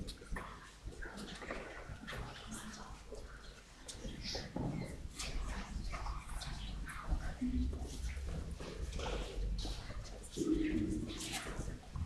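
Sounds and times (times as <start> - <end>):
people shuffling: 0.0 - 12.0.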